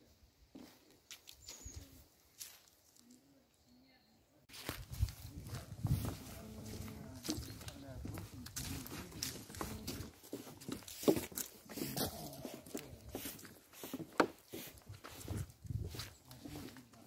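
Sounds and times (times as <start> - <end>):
footsteps of people walking: 0.5 - 3.2, 4.5 - 17.0.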